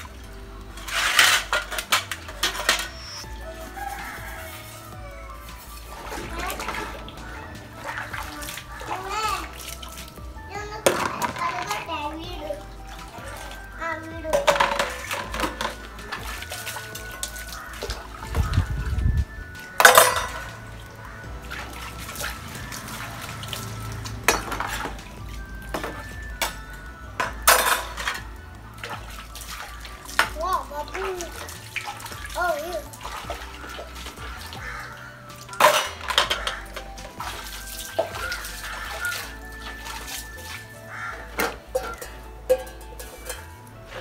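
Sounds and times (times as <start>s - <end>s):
steel dishes being washed: 0.0s - 44.0s
water sloshing in a bucket: 0.0s - 44.0s
pots and pans clattering: 0.8s - 4.8s, 10.8s - 11.9s, 14.3s - 18.5s, 19.8s - 20.6s, 23.6s - 29.0s, 33.1s - 44.0s.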